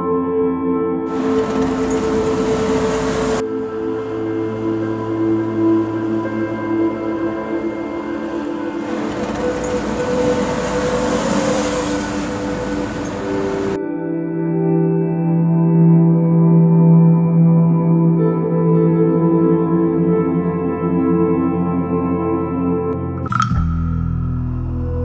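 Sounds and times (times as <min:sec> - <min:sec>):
soft ambient music: 0:00.0 - 0:25.0
car passing by: 0:01.1 - 0:13.8.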